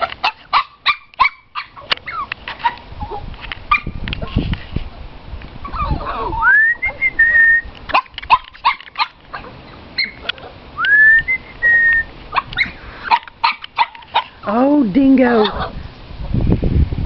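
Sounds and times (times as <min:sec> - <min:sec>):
person whistling: 0:06.4 - 0:07.7, 0:10.8 - 0:12.1.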